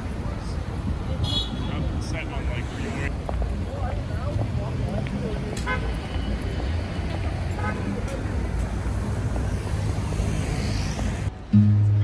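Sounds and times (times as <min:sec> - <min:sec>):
faint voices: 0:00.0 - 0:09.4
rumble of passing cars: 0:00.0 - 0:12.0.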